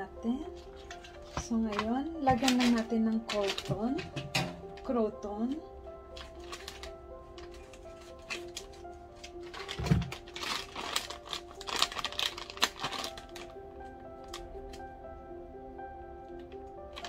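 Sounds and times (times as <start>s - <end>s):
background music simple melody: 0.0s - 17.0s
plastic bag crinkling: 0.5s - 4.9s, 6.0s - 14.8s, 16.5s - 17.0s.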